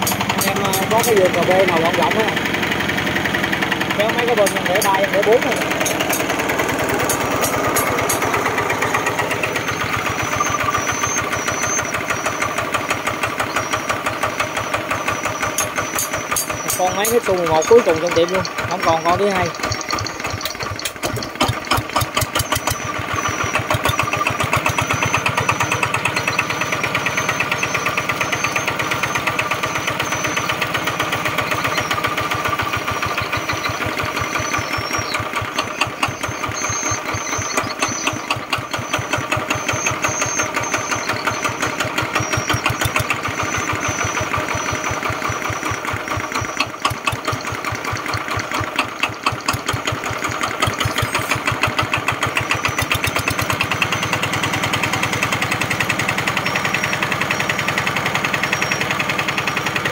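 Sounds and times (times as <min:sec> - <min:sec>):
diesel engine running: 0:00.0 - 0:59.9.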